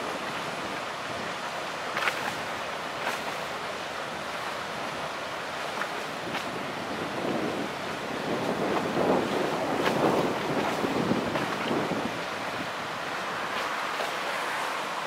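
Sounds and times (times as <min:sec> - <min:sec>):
choppy water rushing: 0:00.0 - 0:15.0
wind buffeting microphone: 0:04.0 - 0:13.8.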